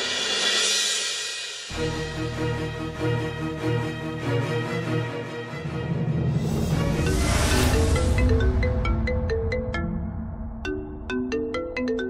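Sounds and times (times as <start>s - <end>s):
phone ringtone plucked melody: 7.1s - 12.0s.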